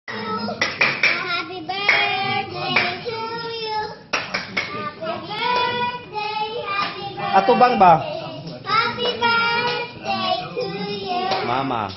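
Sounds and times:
voices singing: 0.1s - 11.9s
hands clapping: 0.6s - 2.1s, 2.7s - 3.0s, 4.1s - 4.8s, 5.5s - 7.0s, 8.4s - 9.9s, 11.3s - 11.9s.

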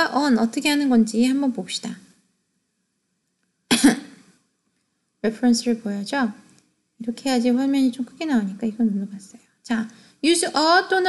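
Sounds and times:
loud cough: 3.7s - 4.3s.

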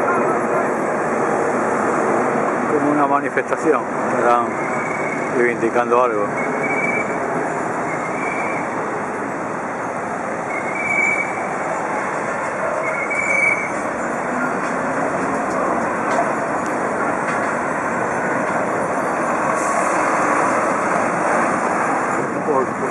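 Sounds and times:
car and coach traffic noise: 0.0s - 22.9s.

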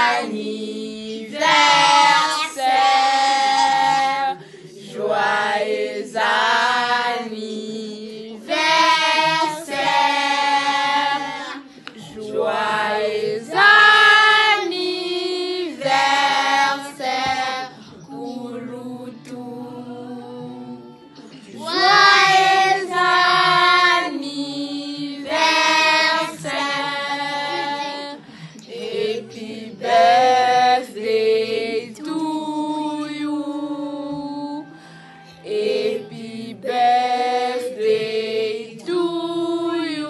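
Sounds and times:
children and adults singing: 0.0s - 40.0s.

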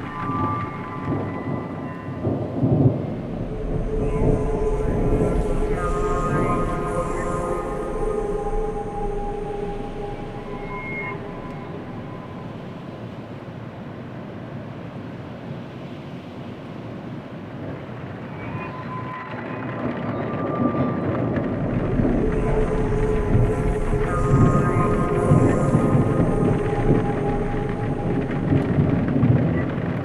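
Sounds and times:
dark ambient horror synth music: 0.0s - 13.6s, 18.3s - 30.0s.

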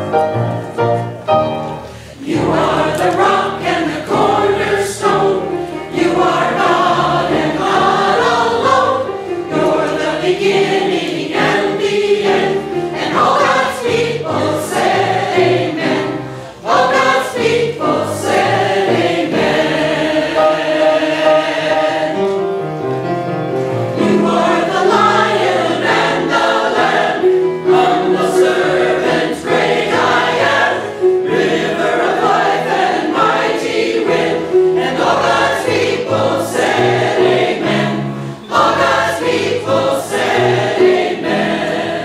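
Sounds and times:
choir singing: 1.6s - 22.8s, 23.7s - 42.0s.

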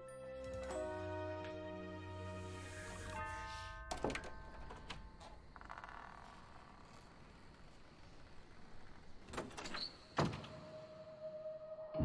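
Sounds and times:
door squeak: 3.6s - 10.7s.

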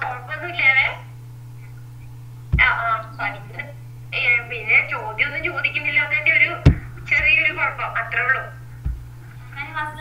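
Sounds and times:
steady low hum: 0.0s - 10.0s
short thump: 6.6s - 7.3s, 8.8s - 9.1s.

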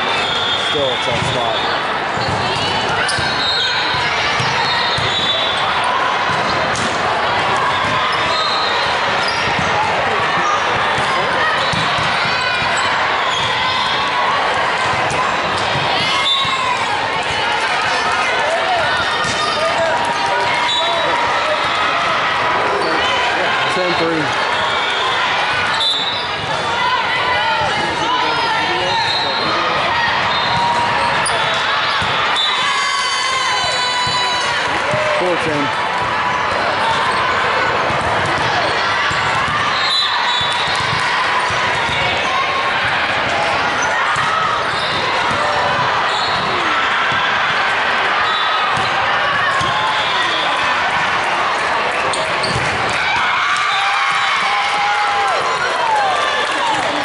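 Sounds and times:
volleyballs struck and bouncing: 0.9s - 23.0s, 29.7s - 32.6s, 34.0s - 47.9s, 48.7s - 53.3s.

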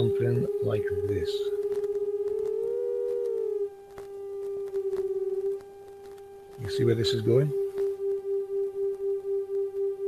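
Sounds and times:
electronic drone tone: 0.0s - 10.0s.

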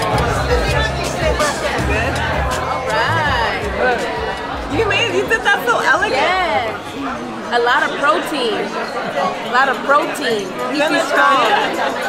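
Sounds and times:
background music: 0.0s - 8.5s
diners talking: 0.0s - 12.0s
restaurant chatter: 0.0s - 12.0s.

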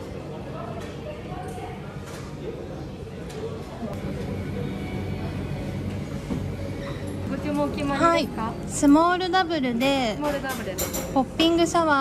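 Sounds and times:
low machine hum: 2.8s - 10.2s.

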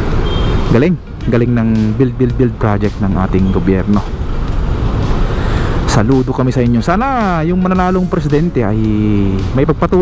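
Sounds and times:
road traffic rumble: 0.0s - 10.0s.

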